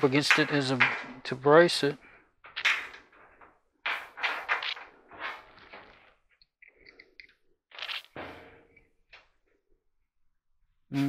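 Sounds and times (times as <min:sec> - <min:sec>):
scraping on sheet metal: 0:03.9 - 0:06.0.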